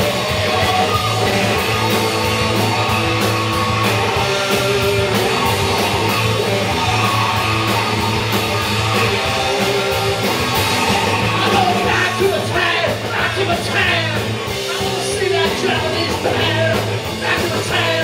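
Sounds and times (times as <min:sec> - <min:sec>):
electric guitar: 0:00.0 - 0:18.0
steady drum beat: 0:00.0 - 0:18.0
person singing: 0:11.1 - 0:18.0.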